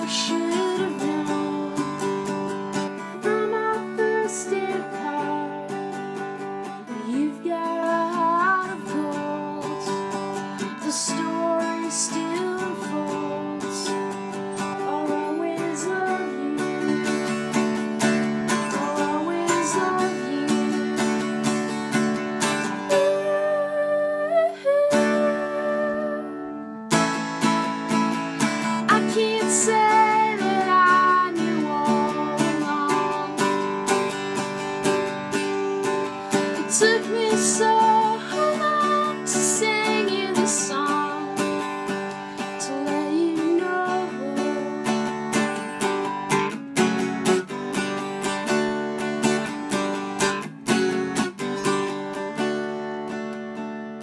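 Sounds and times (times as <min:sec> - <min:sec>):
mandolin picking and strumming: 0:00.0 - 0:54.0.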